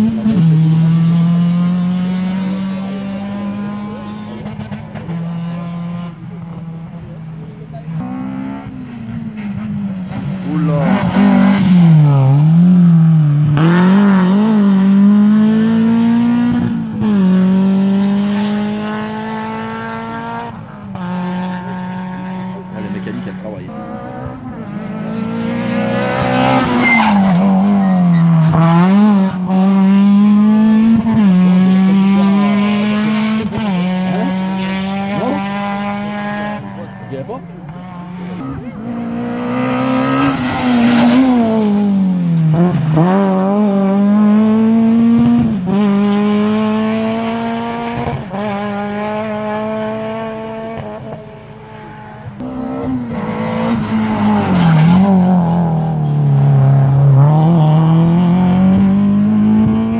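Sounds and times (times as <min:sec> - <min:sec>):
rally car engine at full throttle: 0:00.0 - 0:59.9.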